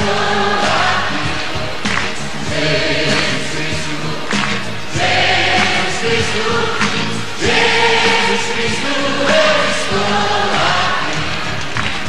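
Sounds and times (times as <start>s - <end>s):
choir singing held notes: 0.0s - 12.0s
live music accompaniment: 0.0s - 12.0s.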